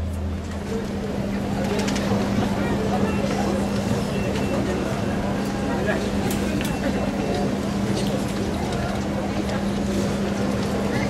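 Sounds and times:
indistinct chatter of passers-by: 0.0 - 11.0.

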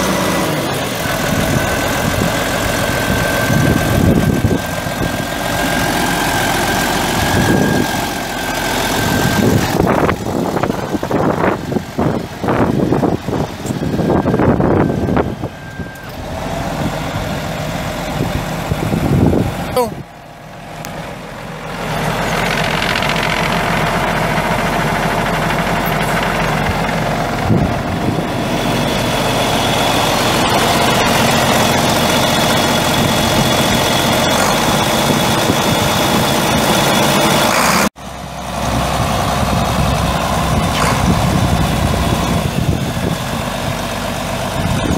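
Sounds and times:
diesel tractor engine running: 0.0 - 44.9.

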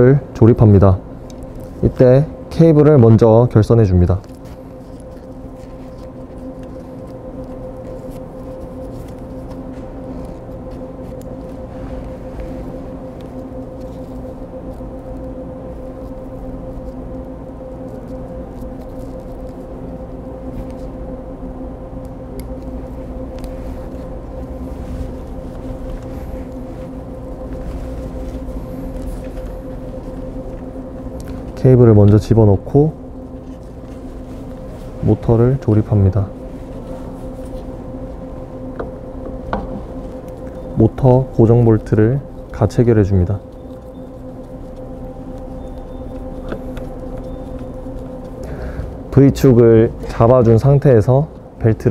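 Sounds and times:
machinery hum: 0.0 - 51.9.

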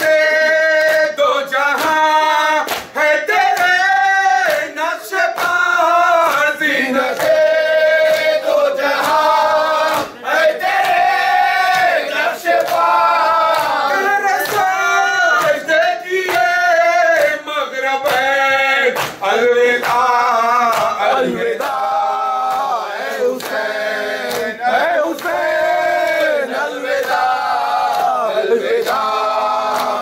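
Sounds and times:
men chanting a lament: 0.0 - 30.0
chest-beating slaps: 19.0 - 20.0.

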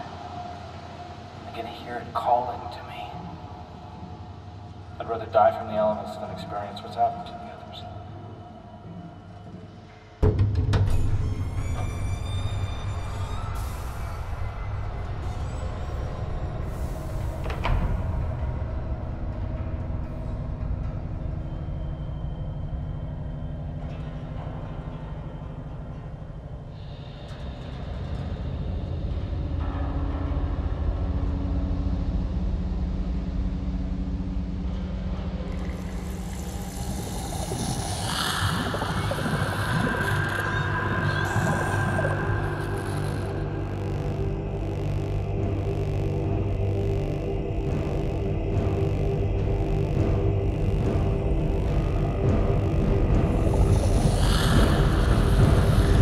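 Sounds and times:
dark droning horror music: 0.0 - 56.0
low rumble: 7.8 - 56.0.

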